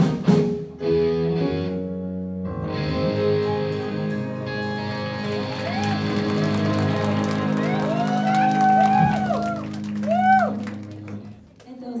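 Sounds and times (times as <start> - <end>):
electric guitar chord ringing: 2.5 - 7.8
audience shouting and whooping: 3.7 - 11.2.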